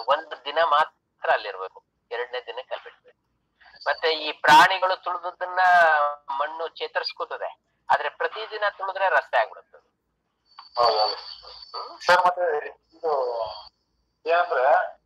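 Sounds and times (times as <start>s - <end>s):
man talking over video call: 0.0s - 3.0s, 3.7s - 9.8s, 10.8s - 13.7s, 14.3s - 15.0s.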